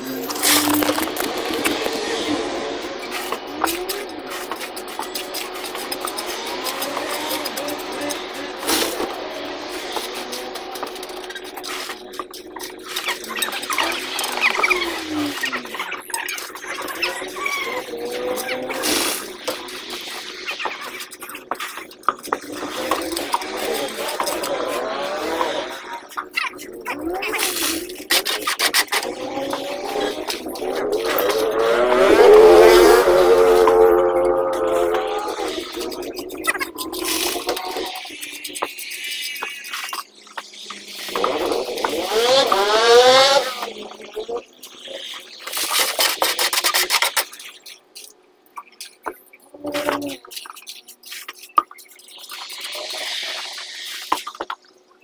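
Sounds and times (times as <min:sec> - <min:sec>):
voices calling out: 0:00.0 - 0:54.6
wet concrete scraping: 0:44.8 - 0:54.6.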